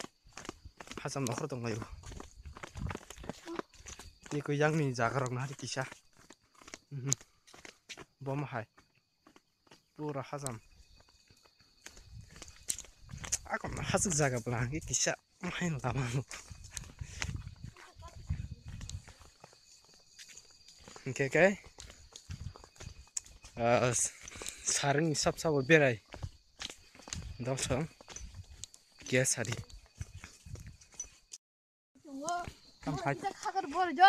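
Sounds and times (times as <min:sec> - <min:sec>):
footsteps on dirt track: 0:00.0 - 0:31.4, 0:32.0 - 0:34.0
microphone handling rumbles: 0:16.5 - 0:19.1.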